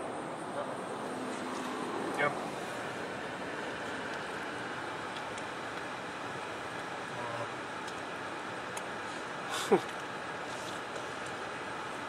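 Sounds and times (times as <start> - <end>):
car interior hum and hiss: 0.0 - 12.0.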